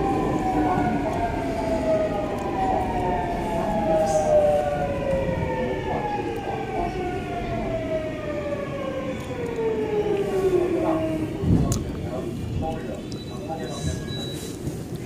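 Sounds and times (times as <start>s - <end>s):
train car rumble: 0.0s - 15.0s.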